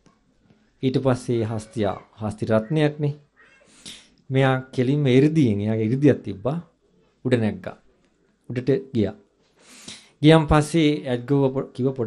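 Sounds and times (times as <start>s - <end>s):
man speaking into a microphone: 0.8s - 3.2s, 4.3s - 7.9s, 8.5s - 9.3s, 10.2s - 12.0s
faint breath: 9.5s - 10.2s.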